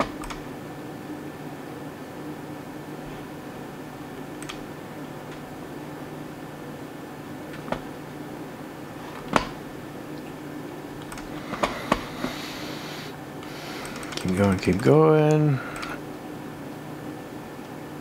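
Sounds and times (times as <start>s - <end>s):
low room hum: 0.0s - 18.0s
computer mouse clicks: 4.4s - 4.6s, 11.0s - 12.1s, 13.8s - 16.0s.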